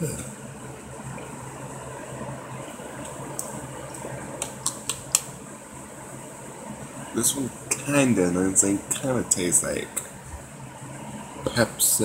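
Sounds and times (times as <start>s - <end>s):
fan-like room hum: 0.0s - 12.0s.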